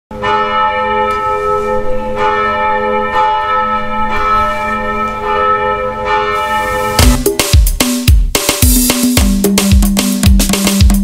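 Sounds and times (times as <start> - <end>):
bells ringing: 0.1 - 7.3.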